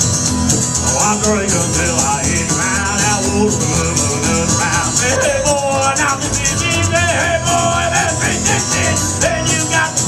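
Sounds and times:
acoustic guitar: 0.0 - 10.0
upright bass: 0.0 - 10.0
washboard scraping rhythm: 1.0 - 10.0
harmonica bending notes: 3.0 - 10.0.

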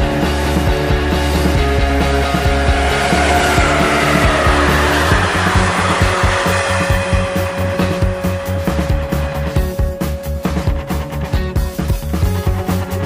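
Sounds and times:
rock music: 0.0 - 13.0
freight train passing at speed: 0.8 - 10.2.

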